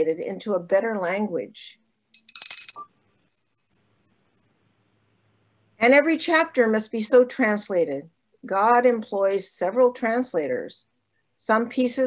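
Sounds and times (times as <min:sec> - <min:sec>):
small handbell ringing: 0:02.2 - 0:04.0.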